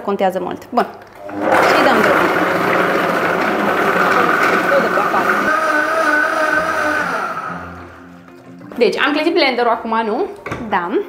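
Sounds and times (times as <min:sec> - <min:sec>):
blender running: 0:01.2 - 0:08.2.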